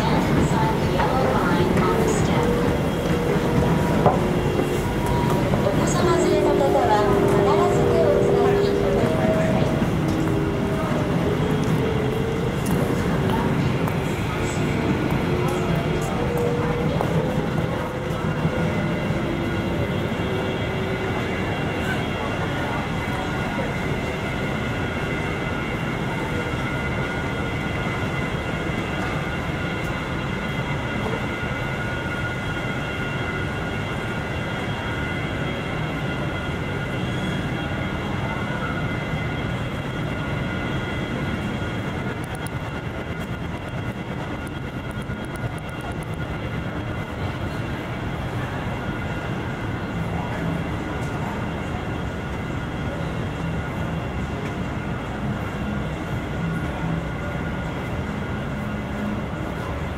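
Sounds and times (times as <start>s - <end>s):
high-pitched steady tones: 0.0s - 54.3s
low city rumble: 0.0s - 59.9s.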